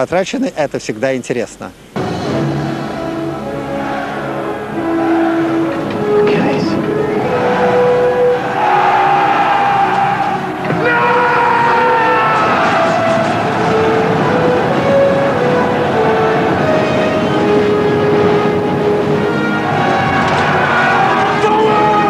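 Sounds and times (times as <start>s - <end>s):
orchestral battle music: 2.0s - 22.0s
roar of charging army: 8.4s - 13.2s.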